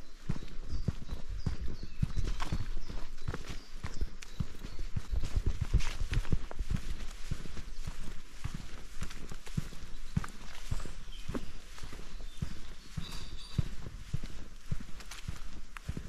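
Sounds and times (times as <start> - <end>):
footsteps on leaves and twigs: 0.0 - 16.0.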